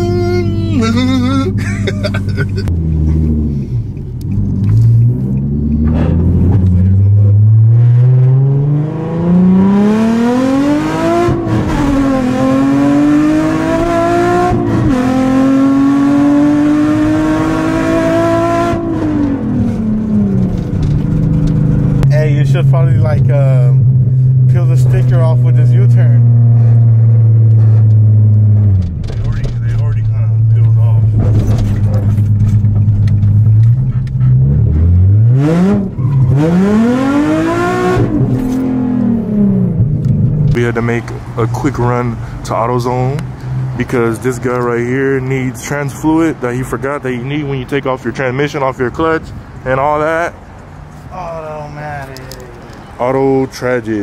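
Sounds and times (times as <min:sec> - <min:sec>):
car engine accelerating and revving: 0:00.0 - 0:45.8.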